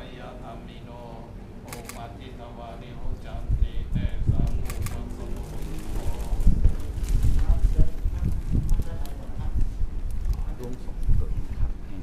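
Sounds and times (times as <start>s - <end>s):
wind buffeting microphone: 3.2s - 12.0s.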